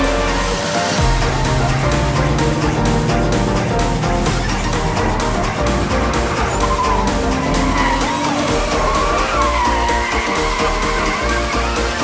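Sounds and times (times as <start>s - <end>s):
car engine: 0.0s - 12.0s
electronic music: 0.0s - 12.0s
tires squealing: 0.0s - 12.0s.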